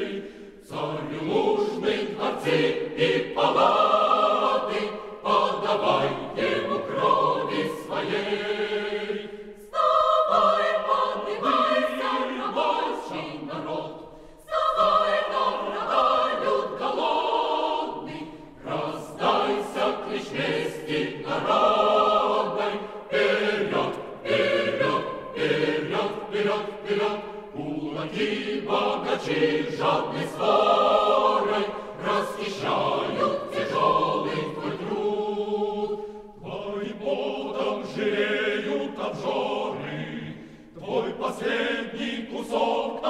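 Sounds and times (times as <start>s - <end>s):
choir singing: 0.0s - 43.0s
singers breathing: 0.1s - 0.7s, 14.0s - 14.5s, 35.9s - 36.4s, 40.3s - 40.8s.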